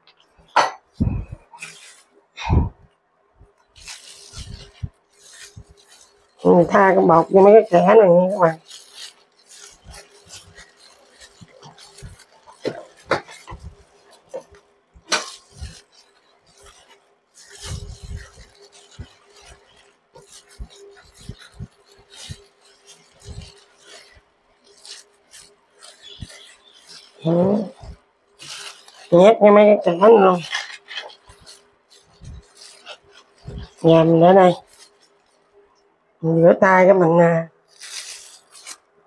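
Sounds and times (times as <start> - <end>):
gloved hands rubbing flour on fish: 0.1 - 2.8, 3.5 - 35.6, 37.6 - 39.0.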